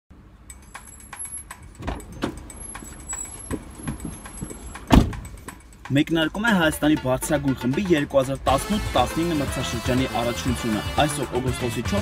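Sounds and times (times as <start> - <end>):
clicks rustles and knocks in car: 0.8 - 5.6
car door shutting: 1.8 - 5.5.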